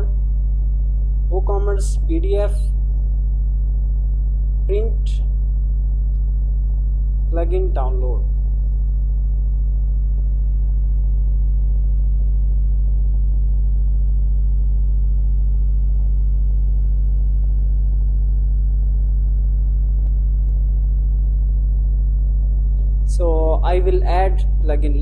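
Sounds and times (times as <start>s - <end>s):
low electrical hum: 0.0s - 25.0s.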